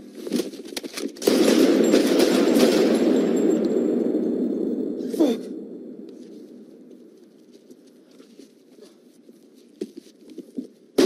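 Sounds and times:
rapid gunfire: 0:01.2 - 0:03.6.

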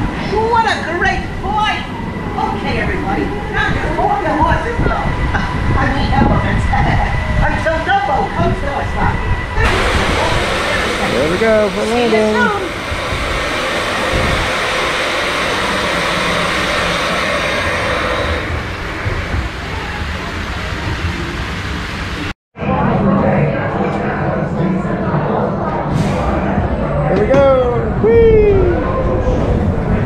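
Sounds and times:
steady rushing noise: 0:00.0 - 0:22.8
voices: 0:00.3 - 0:14.8.

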